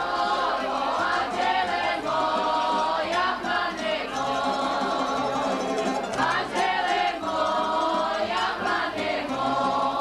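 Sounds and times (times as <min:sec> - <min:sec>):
group singing folk song: 0:00.0 - 0:10.0.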